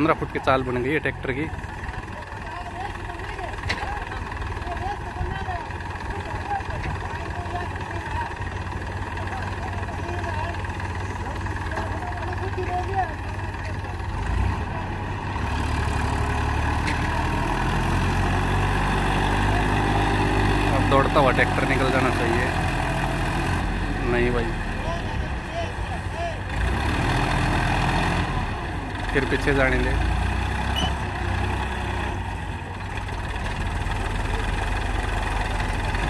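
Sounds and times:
men talking: 0.0s - 15.3s, 18.4s - 26.7s, 28.9s - 30.2s
diesel tractor engine under load: 0.0s - 36.0s.

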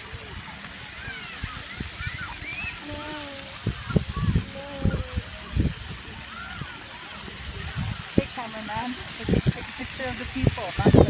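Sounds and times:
distant children's voices: 0.0s - 8.2s
water jets hissing: 0.0s - 11.0s.

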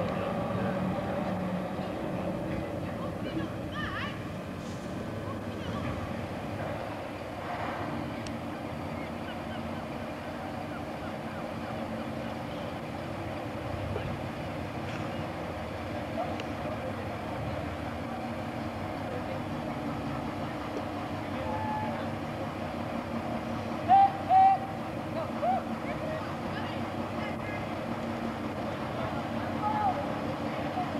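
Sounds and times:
diesel locomotive engine droning: 0.0s - 30.9s.

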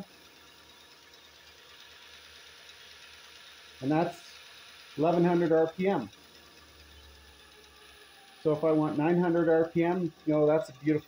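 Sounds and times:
grinder motor whirring: 0.0s - 11.0s.

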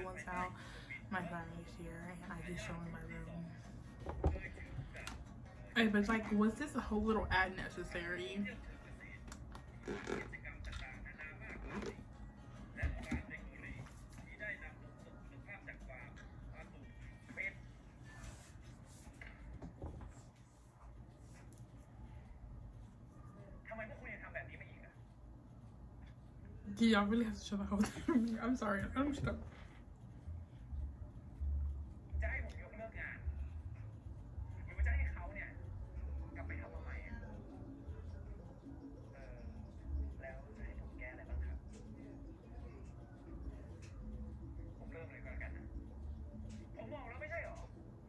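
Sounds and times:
faint background music: 0.0s - 48.0s
tv drama dialogue: 0.0s - 48.0s.

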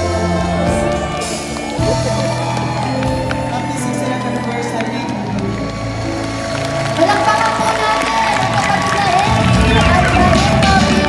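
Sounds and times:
music over sound system: 0.0s - 11.0s.

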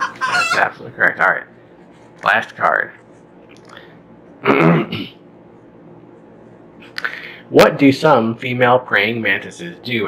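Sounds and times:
man clearing his throat: 4.4s - 5.2s.

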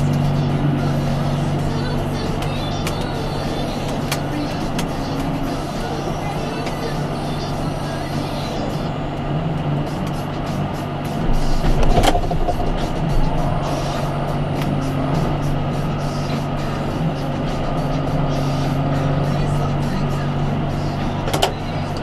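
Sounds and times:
tractor engine running: 0.0s - 22.0s.

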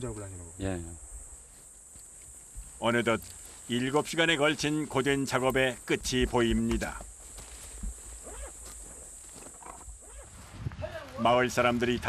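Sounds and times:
high insect drone: 0.0s - 12.0s
footsteps on pine needles: 1.4s - 5.2s, 6.1s - 12.0s
walking stick tapping ground: 5.4s - 9.8s.

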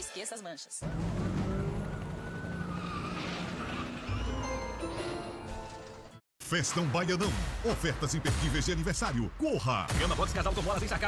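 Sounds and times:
cars driving fast: 0.8s - 4.2s.

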